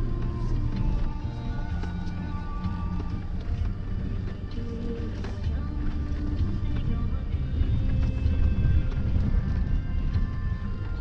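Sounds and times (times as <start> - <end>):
music playing: 0.0 - 11.0
vehicle driving on dirt road: 0.0 - 11.0.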